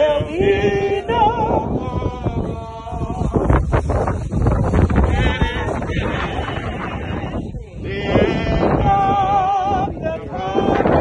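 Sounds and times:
people singing a hymn: 0.0 - 11.0.

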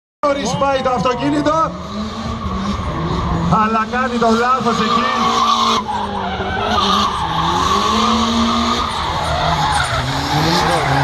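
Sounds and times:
car engine revving high: 0.6 - 11.0.

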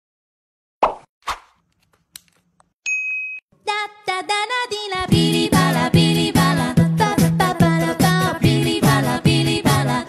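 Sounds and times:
high electronic ding: 2.9 - 3.5
sung tune with music: 5.1 - 10.0.

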